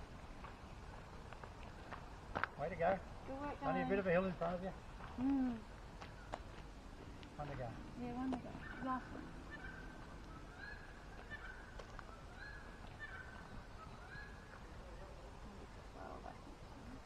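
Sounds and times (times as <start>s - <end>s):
bird calling faintly: 5.1s - 17.0s.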